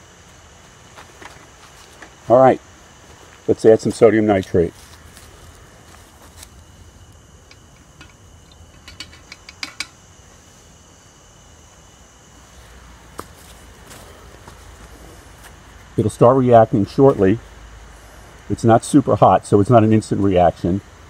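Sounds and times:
pedestal fan running: 0.0s - 21.0s.

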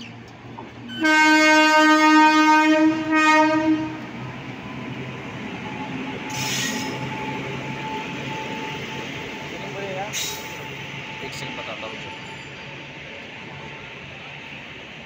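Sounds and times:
train coaches rumbling past: 0.0s - 15.0s
train horn blast: 0.9s - 4.1s.

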